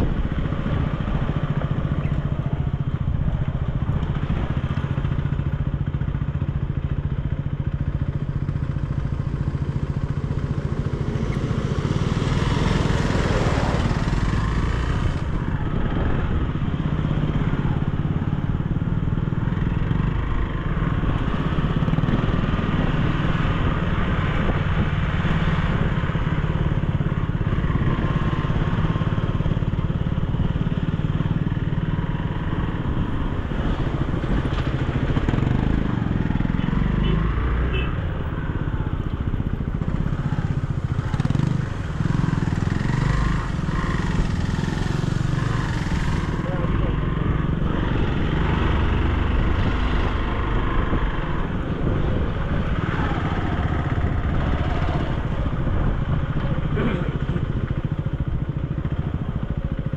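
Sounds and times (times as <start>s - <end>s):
motorcycle engine running: 0.0s - 59.9s
tyres on gravel road: 0.0s - 59.9s.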